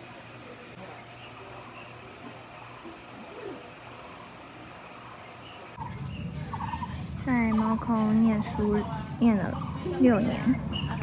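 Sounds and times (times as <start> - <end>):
outdoor background ambience: 0.0 - 11.0
distant bird calls: 1.1 - 11.0.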